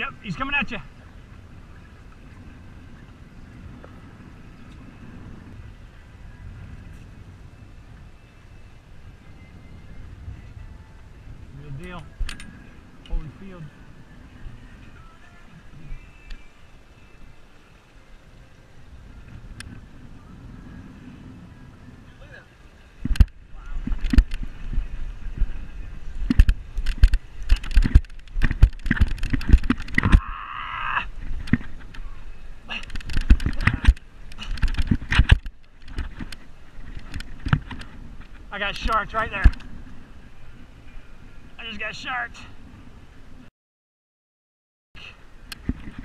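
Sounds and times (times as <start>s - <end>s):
fishing rod knocks and thumps: 26.2s - 30.2s.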